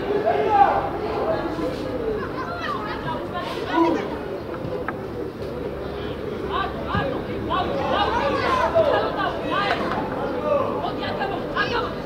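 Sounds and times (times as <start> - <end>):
voices talking and calling: 0.0 - 12.0
players shouting: 6.3 - 12.0.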